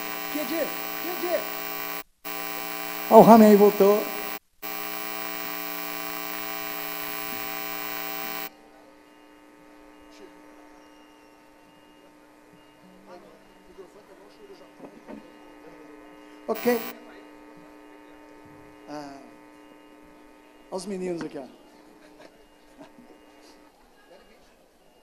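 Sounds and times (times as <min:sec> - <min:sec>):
electrical mains hum and buzz: 0:00.0 - 0:22.0.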